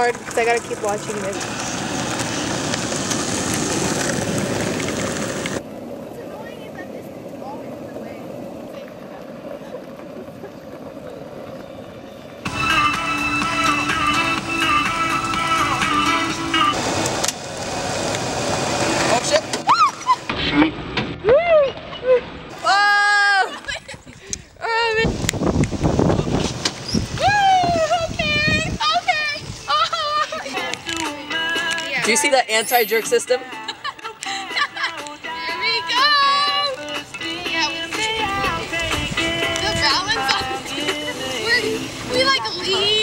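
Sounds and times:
skateboard wheels rolling on asphalt: 0:00.0 - 0:21.9, 0:22.5 - 0:32.4, 0:33.4 - 0:43.0
background music with held chords: 0:12.5 - 0:16.7
high squealing laughter: 0:19.7 - 0:20.3.

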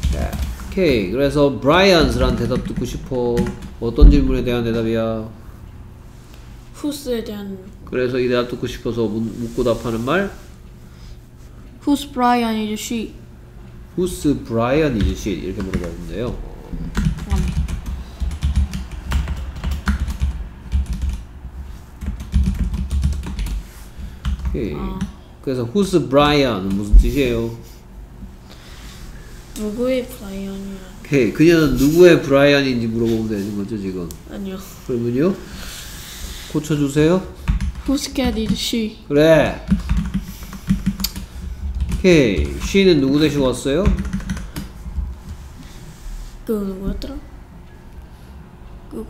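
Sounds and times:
typing on a computer keyboard: 0:16.9 - 0:21.2, 0:22.0 - 0:23.6, 0:39.7 - 0:42.5, 0:43.8 - 0:44.7.

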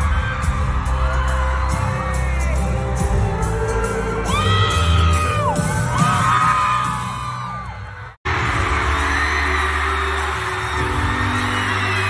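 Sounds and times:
crowd cheering: 0:00.0 - 0:03.2, 0:03.8 - 0:12.0.

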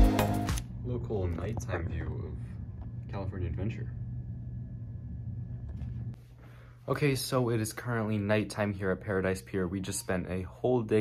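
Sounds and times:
steady low hum: 0:00.6 - 0:11.0.

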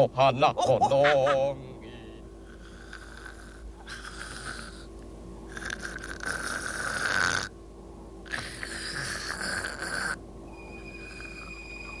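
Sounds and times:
man snoring: 0:02.5 - 0:04.9, 0:05.5 - 0:07.5, 0:08.3 - 0:10.2.

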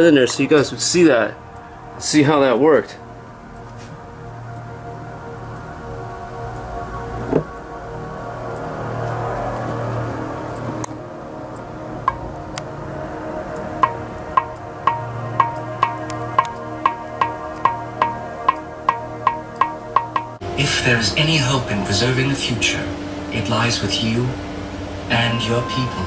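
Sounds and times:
ominous ambient pad: 0:00.0 - 0:26.0
light ticking beat: 0:11.6 - 0:22.5.

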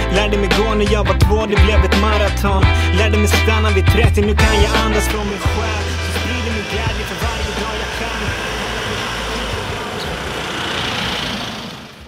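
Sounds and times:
background music: 0:00.0 - 0:10.2
car driving past: 0:05.1 - 0:12.0.

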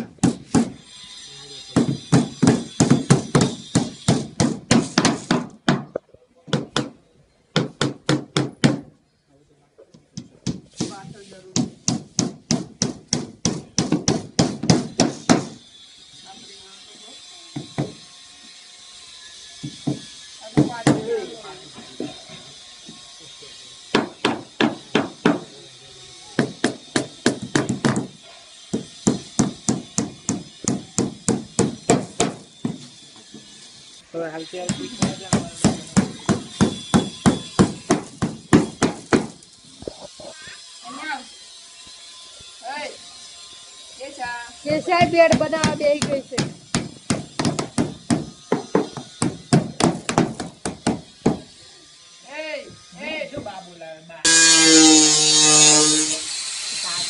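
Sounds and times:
hammer blows on wooden board: 0:01.8 - 0:08.9, 0:10.2 - 0:15.6, 0:26.4 - 0:33.0, 0:34.7 - 0:39.4, 0:44.7 - 0:51.5.

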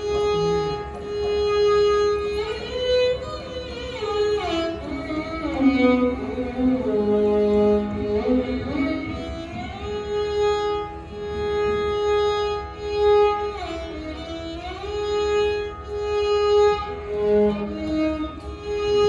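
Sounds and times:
violins playing in unison: 0:00.0 - 0:19.0.

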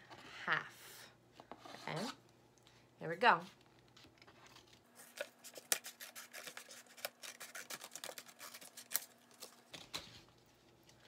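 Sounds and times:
scissors cutting paper plate: 0:05.1 - 0:10.0.

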